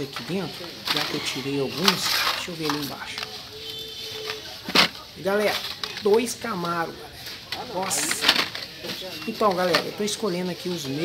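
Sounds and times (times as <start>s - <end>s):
plastic packages shuffled in box: 0.0s - 11.0s.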